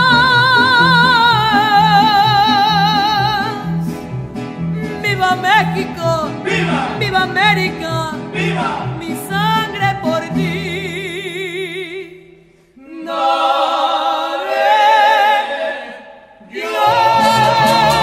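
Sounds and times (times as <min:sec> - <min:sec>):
mariachi band playing: 0:00.0 - 0:11.0, 0:16.7 - 0:18.0.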